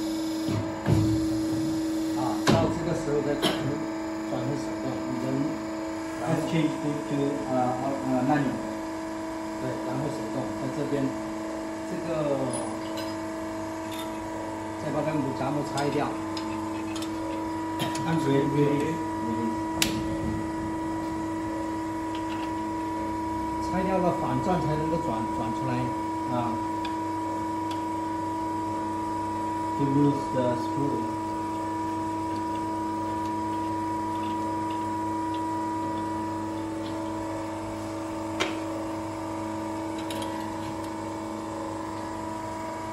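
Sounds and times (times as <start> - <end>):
winding machine electric hum: 0.0 - 42.9
faint clicks of metal parts: 15.7 - 18.9, 40.0 - 41.0.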